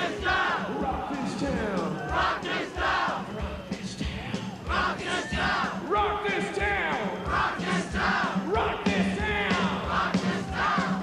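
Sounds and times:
large crowd: 0.0 - 11.0
steady low drum beat: 0.0 - 11.0.

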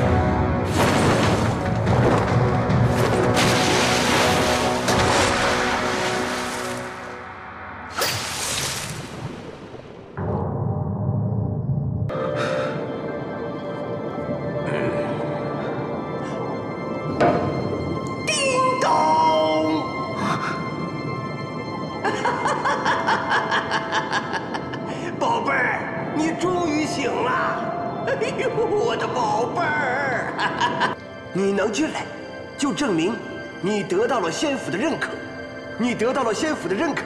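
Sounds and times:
eerie background music: 0.0 - 37.0.

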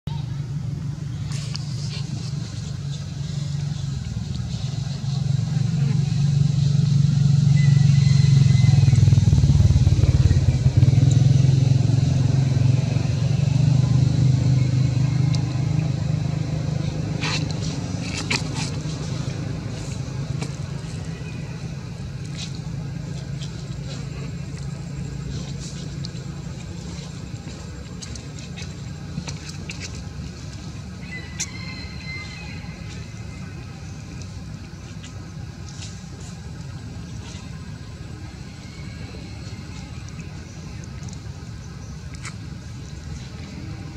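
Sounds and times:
vehicle engine passing: 1.0 - 31.0.

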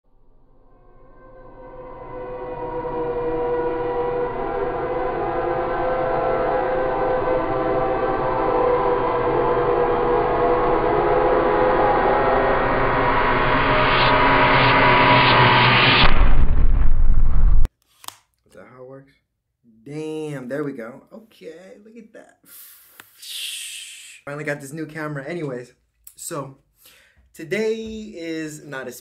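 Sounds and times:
droning horror soundtrack: 0.1 - 17.7
heavy low rumble: 0.2 - 17.7.

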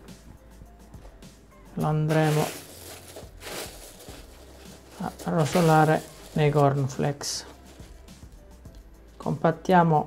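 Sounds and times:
corn flakes rustling in a bowl: 1.9 - 8.0.

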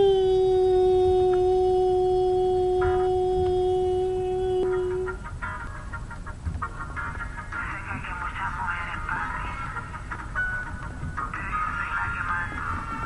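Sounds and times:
woman singing a long note: 0.0 - 5.2
faint choppy music: 0.0 - 13.0.

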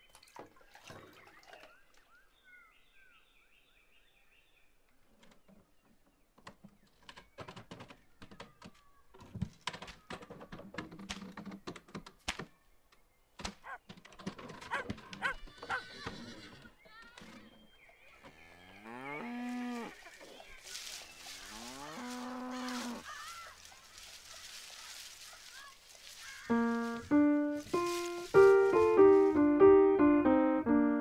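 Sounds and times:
cow mooing: 18.2 - 20.0, 21.5 - 23.0.

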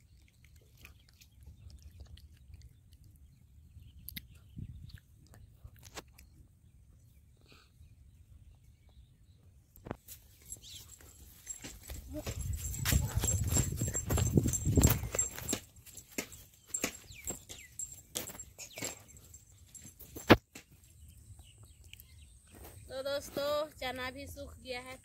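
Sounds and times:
footsteps on dirt path: 9.9 - 20.9.

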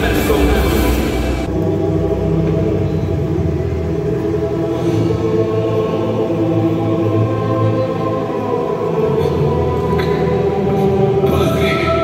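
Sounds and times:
live band music: 0.0 - 1.5
low sustained drone chords: 0.0 - 12.0.

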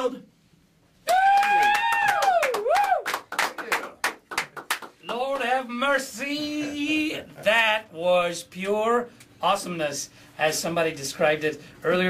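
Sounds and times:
high whoop of cheering: 1.0 - 3.2
people clapping: 1.1 - 5.6.

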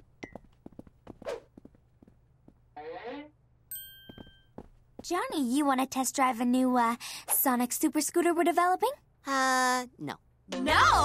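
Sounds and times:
ringing chime ting: 3.7 - 4.6.

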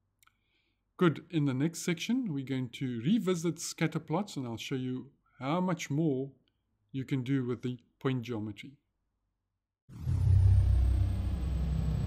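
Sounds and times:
faint high whine: 10.0 - 12.0.

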